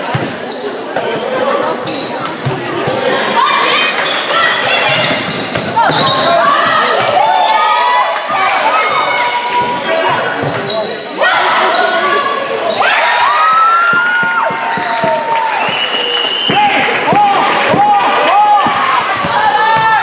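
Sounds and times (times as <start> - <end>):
shoes squeaking on hardwood floor: 0.2 - 3.0, 4.0 - 6.4, 9.4 - 12.9.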